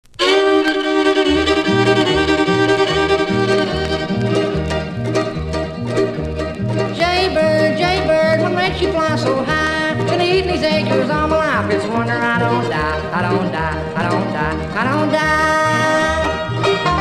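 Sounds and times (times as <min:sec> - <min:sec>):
fiddle melody: 0:00.1 - 0:17.0
two-note bass line: 0:00.2 - 0:17.0.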